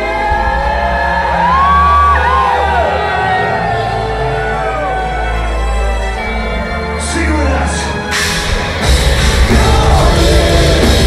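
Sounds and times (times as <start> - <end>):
crowd shouts: 0.0 - 5.7.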